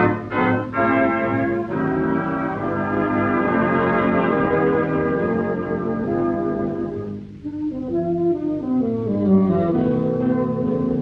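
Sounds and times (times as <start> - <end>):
dance orchestra holding chords: 0.0 - 7.5.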